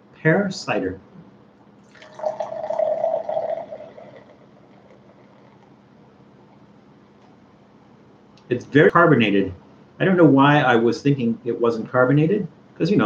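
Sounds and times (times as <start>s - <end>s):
carbonated cider pouring into glass: 1.8s - 5.8s.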